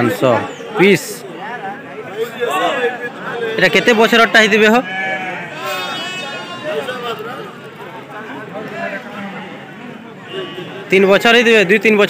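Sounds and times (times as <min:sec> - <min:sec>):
people talking: 0:00.0 - 0:04.8, 0:05.6 - 0:12.0
ram bleating: 0:04.8 - 0:07.0.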